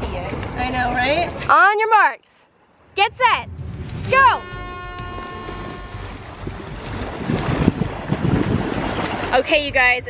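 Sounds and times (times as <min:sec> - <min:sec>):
wind rumbling on microphone: 0:02.9 - 0:10.0
water splashing from swimming: 0:04.8 - 0:10.0.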